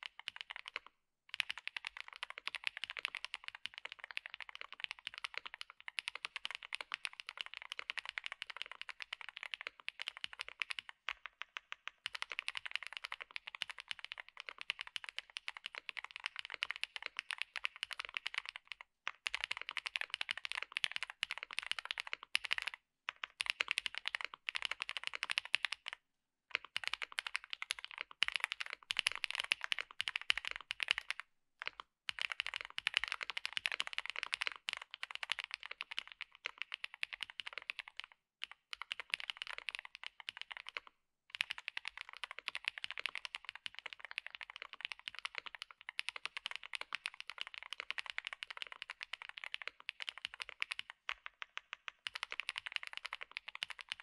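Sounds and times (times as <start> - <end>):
mechanical keyboard typing clacks: 0.0 - 54.0.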